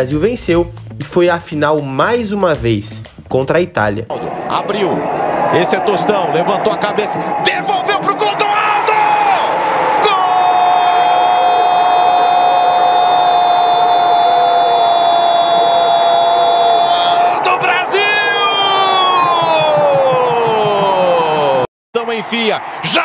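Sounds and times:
commentator shouting goal: 4.1 - 11.2, 15.4 - 23.0
stadium crowd cheering: 4.1 - 23.0.

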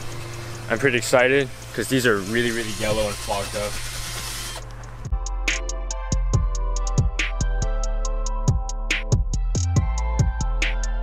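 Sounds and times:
music with drum beat: 4.9 - 11.0.

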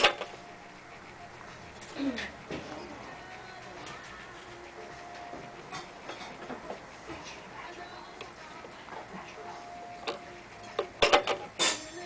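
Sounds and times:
sign mechanism ticking: 0.0 - 11.6
faint voices: 0.6 - 12.0.

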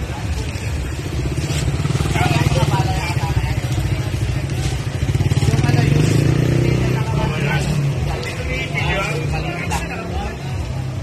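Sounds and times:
engine running and revving: 0.0 - 11.0
people talking in street: 0.0 - 11.0.

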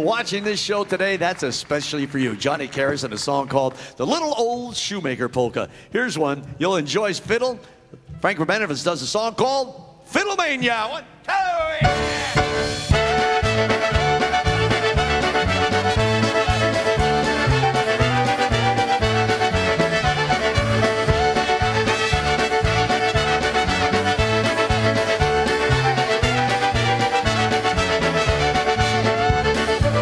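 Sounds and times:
fiddle melody: 11.8 - 30.0
polka band playing: 11.8 - 30.0.

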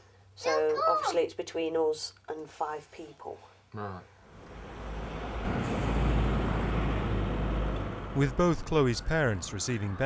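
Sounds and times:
vehicle passing close by: 4.3 - 10.0.

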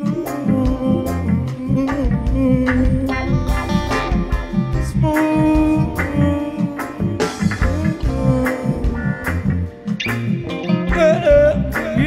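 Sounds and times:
bass line: 0.0 - 12.0
drum kit: 0.0 - 12.0
electric guitar: 0.0 - 12.0
reggae band playing: 0.0 - 12.0.

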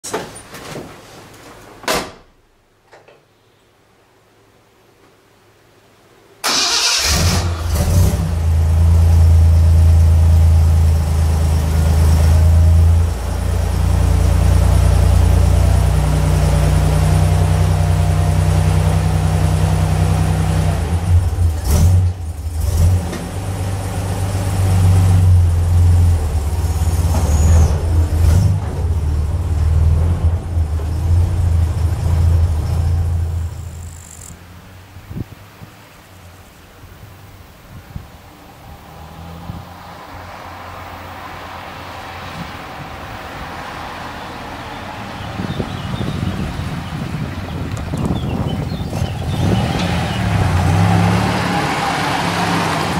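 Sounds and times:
car engine starting and idling: 6.4 - 34.8.

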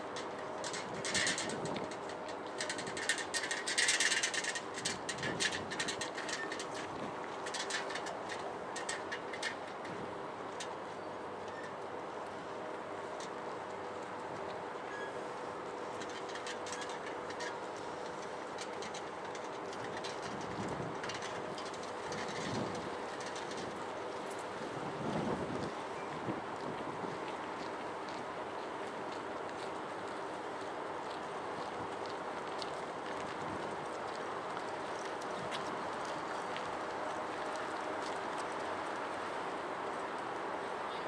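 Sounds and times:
tram equipment humming: 0.0 - 41.0.

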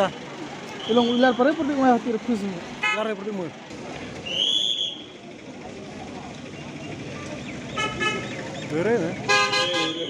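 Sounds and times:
busy street traffic: 0.0 - 10.0
short high whistle: 4.3 - 5.1
car horn: 7.8 - 8.3, 9.2 - 10.0.

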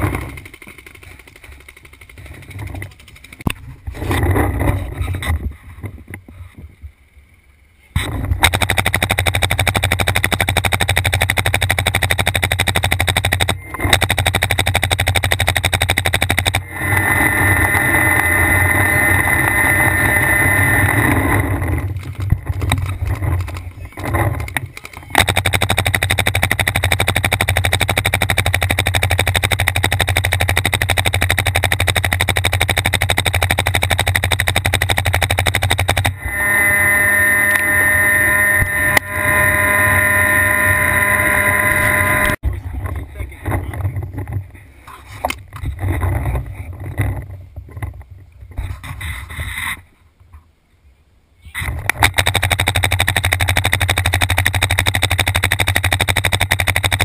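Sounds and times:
paintball marker firing rapidly: 0.0 - 3.6, 8.4 - 17.0, 21.9 - 36.2, 51.9 - 57.0.

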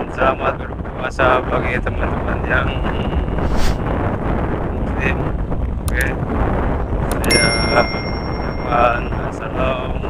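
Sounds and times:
wind rush on microphone: 0.0 - 10.0
notification bell ding: 7.2 - 9.2.

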